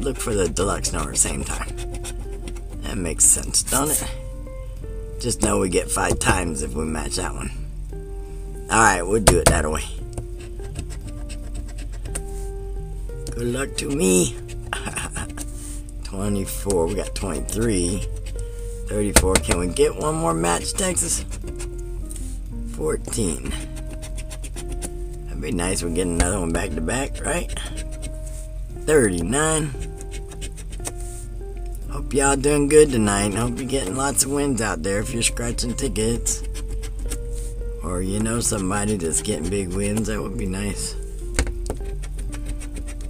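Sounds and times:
background music: 0.0 - 43.0
coin scraping lottery ticket: 42.0 - 43.0.

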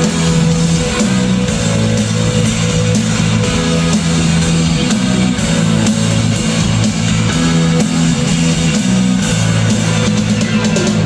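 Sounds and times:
live rock band: 0.0 - 11.0.

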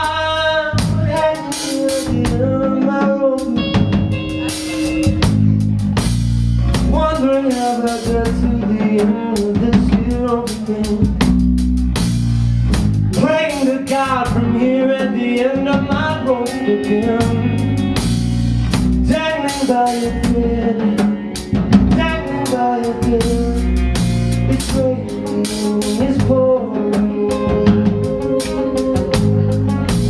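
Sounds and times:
bass and guitar chords: 0.0 - 30.0
bending lead guitar line: 0.0 - 30.0.

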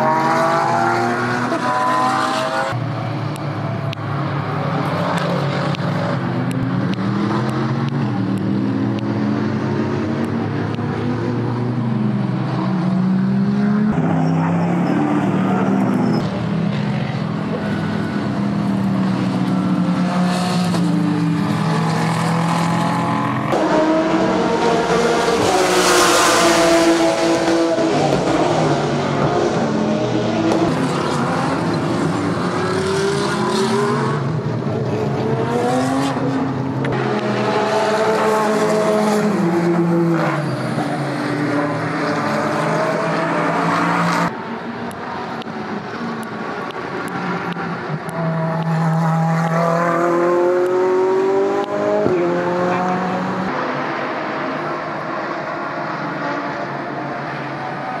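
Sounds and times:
race car engines: 0.0 - 58.0.

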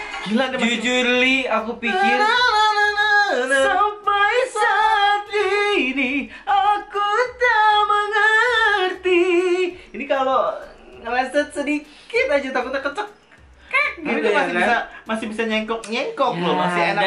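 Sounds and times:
high voice singing with vibrato: 0.2 - 9.8.

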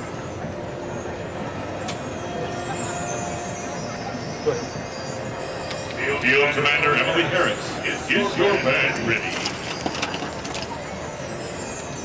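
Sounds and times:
stadium background noise: 0.0 - 12.0
faint clinks: 7.9 - 12.0.

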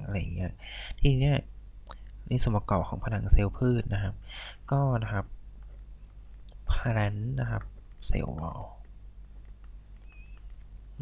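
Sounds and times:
low electrical hum: 0.0 - 11.0
stylus tapping on tablet screen: 7.4 - 10.8
faint high squeak: 10.0 - 10.6.

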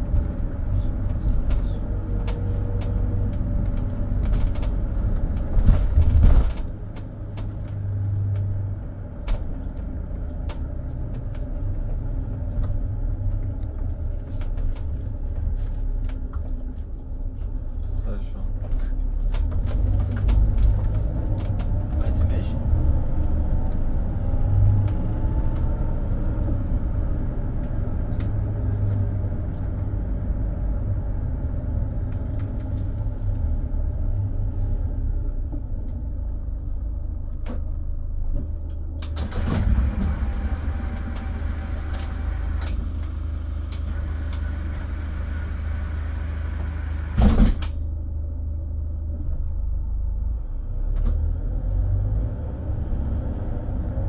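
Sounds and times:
diesel engine and road noise: 0.0 - 54.0.

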